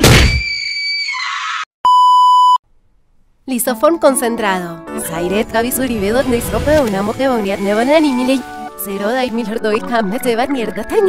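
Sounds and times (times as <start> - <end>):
censor beep tone: 1.9 - 2.6.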